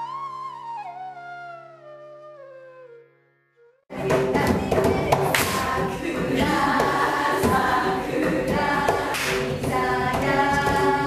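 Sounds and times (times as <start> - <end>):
women singing in unison: 3.9 - 11.0
hand claps: 5.1 - 5.8, 8.9 - 9.5.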